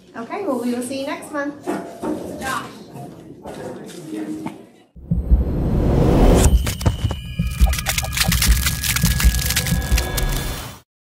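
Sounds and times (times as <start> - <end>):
low thuds: 5.0 - 7.8
crackling splintering clicks: 7.4 - 10.6.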